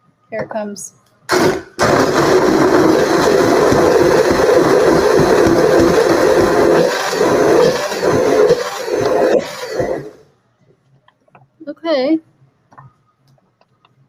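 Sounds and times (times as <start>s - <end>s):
blender chopping corn: 1.3s - 10.2s.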